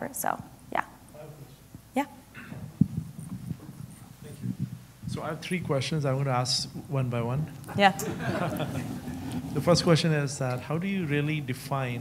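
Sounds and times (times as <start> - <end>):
soft low thumps: 2.4 - 5.7.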